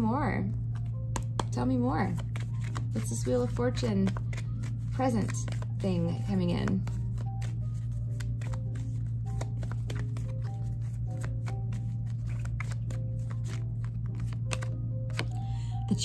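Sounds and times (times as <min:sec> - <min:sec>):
faint background music: 0:00.0 - 0:16.0
steady low hum: 0:00.0 - 0:16.0
cards being shuffled: 0:00.7 - 0:15.4.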